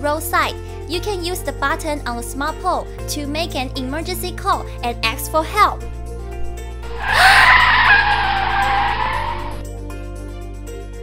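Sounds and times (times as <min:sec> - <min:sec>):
background music: 0:00.0 - 0:11.0
car tyres screeching: 0:06.8 - 0:09.6.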